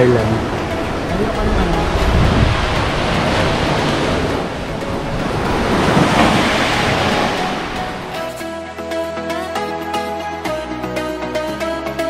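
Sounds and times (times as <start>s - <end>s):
waves washing onto beach: 0.0s - 8.4s
music with steady notes: 0.0s - 12.0s.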